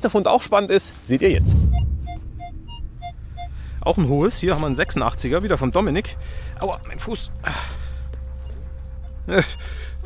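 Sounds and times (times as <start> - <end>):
steady low rumble: 1.2 - 6.6.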